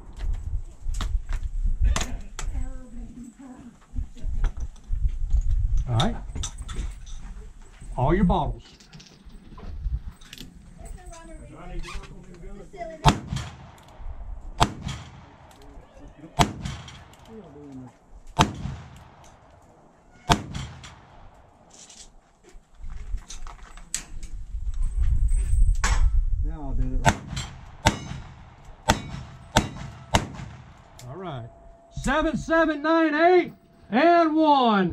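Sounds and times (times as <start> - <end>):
revolver gunshots: 13.0 - 15.7, 16.3 - 17.3, 18.3 - 21.7, 27.0 - 31.0.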